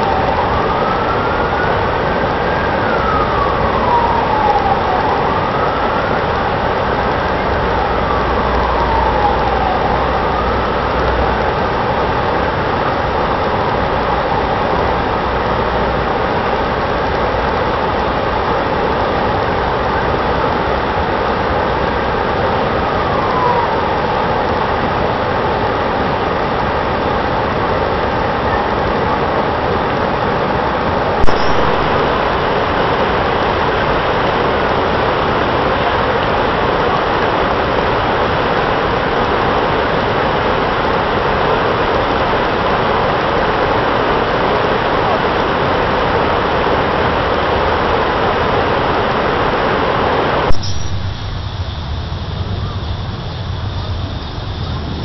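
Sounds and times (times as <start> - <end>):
siren wailing: 0.0 - 25.7, 31.2 - 39.1
fountain water jets rushing: 0.0 - 55.0.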